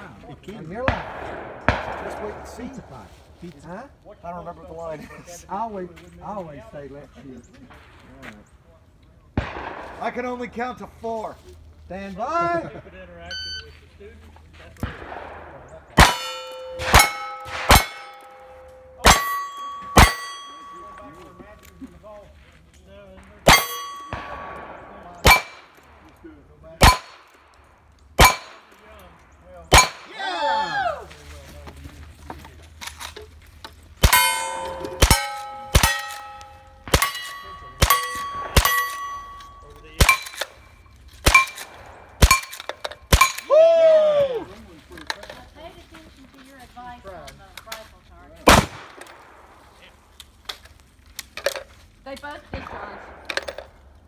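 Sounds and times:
gunshots: 0.7s - 3.1s, 9.4s - 10.5s, 14.8s - 21.0s, 23.4s - 26.1s, 26.8s - 27.5s, 28.2s - 28.7s, 29.7s - 30.2s, 34.0s - 40.6s, 41.2s - 43.5s, 48.4s - 49.9s, 52.5s - 53.9s
steel plate target ringing: 16.0s - 21.2s, 23.4s - 24.6s, 25.2s - 25.7s, 26.8s - 27.2s, 28.2s - 28.7s, 29.7s - 30.1s, 34.0s - 43.5s.

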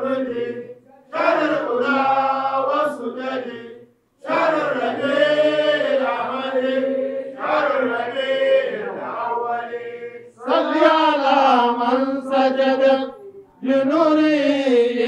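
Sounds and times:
man chanting: 10.4s - 15.0s.

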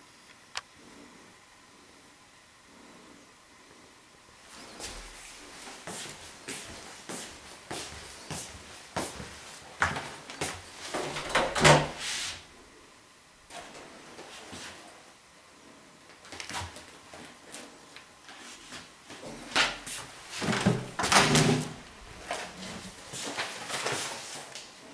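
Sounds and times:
footsteps on wooden floor: 5.8s - 11.2s.

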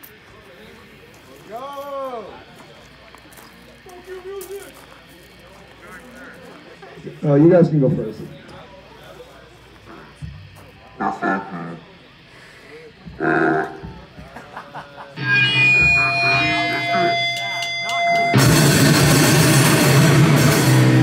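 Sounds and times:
crowd murmuring: 0.0s - 21.0s
amplified guitar notes: 10.2s - 11.9s, 13.0s - 14.2s, 15.1s - 21.0s
heavy metal band playing: 13.1s - 14.2s, 15.1s - 21.0s.

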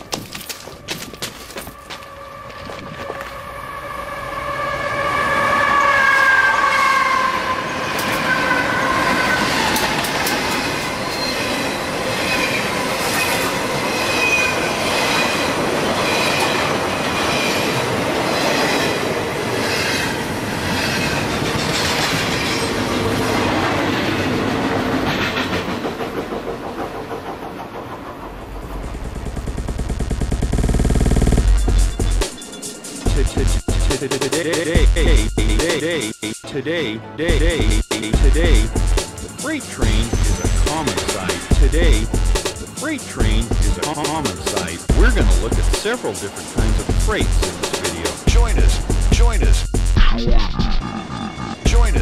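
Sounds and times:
freight train high tone: 1.5s - 29.3s, 31.4s - 49.9s
train low rumble: 7.4s - 52.0s
train wheels clicking over rail joints: 20.6s - 22.9s, 24.7s - 29.7s.

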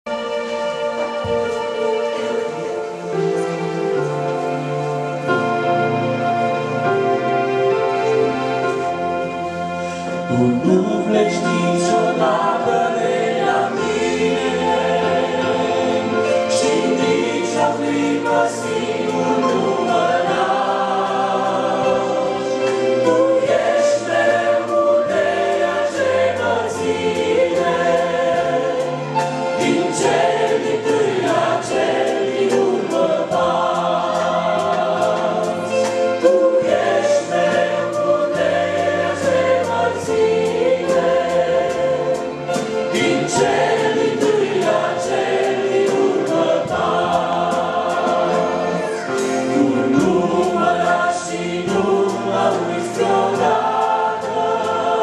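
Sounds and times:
group singing a hymn: 5.1s - 55.0s.

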